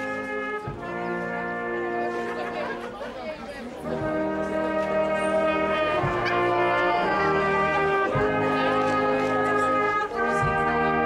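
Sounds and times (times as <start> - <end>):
brass band held chord: 0.0 - 11.0
people chattering: 0.0 - 11.0.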